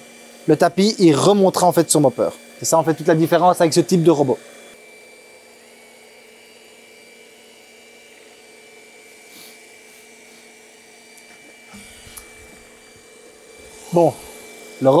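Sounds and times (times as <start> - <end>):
robot vacuum humming: 0.0 - 15.0.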